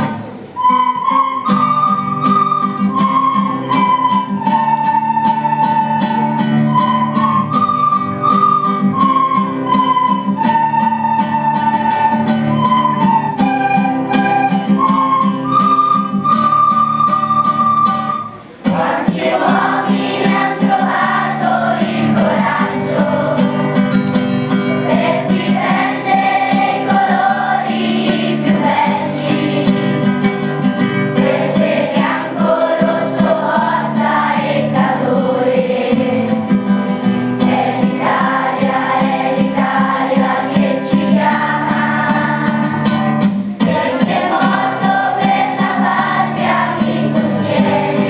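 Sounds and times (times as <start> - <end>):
children playing recorders: 0.0 - 48.0
children's choir singing: 0.0 - 48.0.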